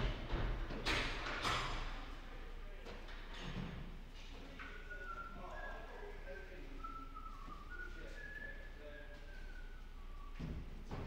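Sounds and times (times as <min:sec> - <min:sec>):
high whistled tones: 0:04.7 - 0:10.6.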